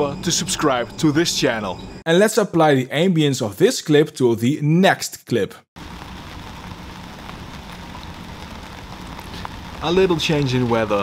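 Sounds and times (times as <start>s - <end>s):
steady rain falling: 5.8s - 11.0s.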